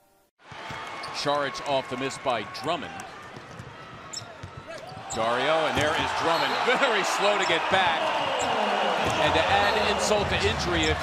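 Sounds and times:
arena crowd noise: 0.4 - 11.0.

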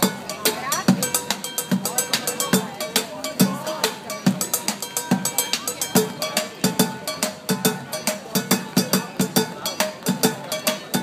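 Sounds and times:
drumming on buckets and pots: 0.0 - 11.0.

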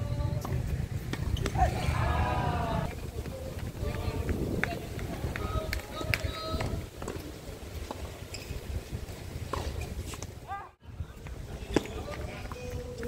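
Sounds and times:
players and onlookers calling: 1.3 - 6.8.

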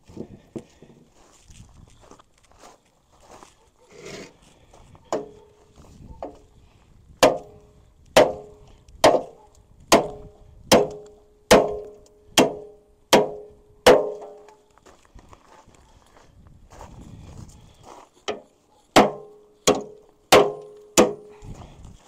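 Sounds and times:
sledgehammer striking steel frame: 7.2 - 7.6, 8.2 - 14.5, 18.3 - 21.3.

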